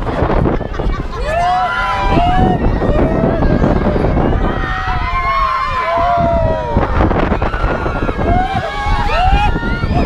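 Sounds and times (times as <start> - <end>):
wind buffeting microphone: 0.0 - 10.0
riders yelling and whooping: 0.4 - 10.0.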